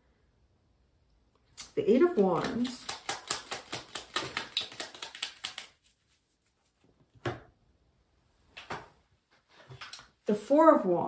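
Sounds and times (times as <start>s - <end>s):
cards being shuffled: 1.6s - 7.4s.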